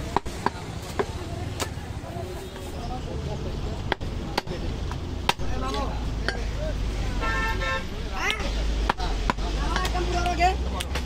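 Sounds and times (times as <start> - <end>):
street traffic rumble: 0.0 - 11.0
vehicle horn honking: 7.0 - 7.9.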